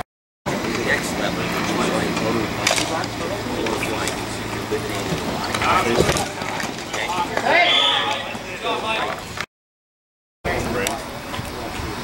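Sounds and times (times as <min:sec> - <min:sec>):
voices shouting: 0:03.4 - 0:09.2.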